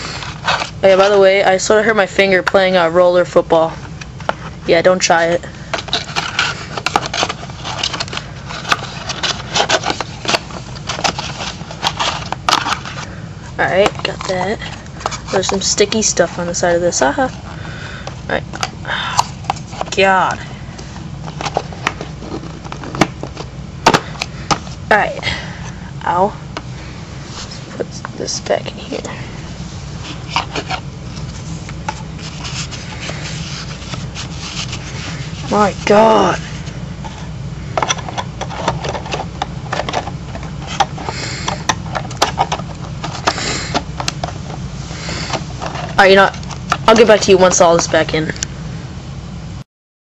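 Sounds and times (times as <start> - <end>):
steady low hum: 0.0 - 49.6.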